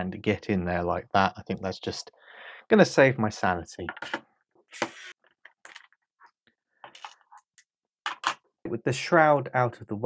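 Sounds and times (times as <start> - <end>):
screwdriver scrape: 4.7 - 5.2.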